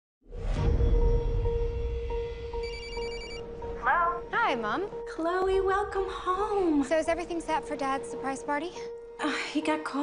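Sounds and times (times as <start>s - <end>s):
phone ringing electronic trill: 2.6s - 3.5s.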